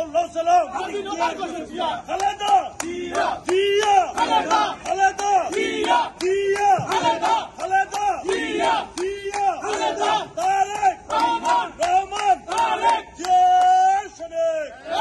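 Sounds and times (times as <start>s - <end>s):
men chanting slogans in unison: 0.0s - 15.0s.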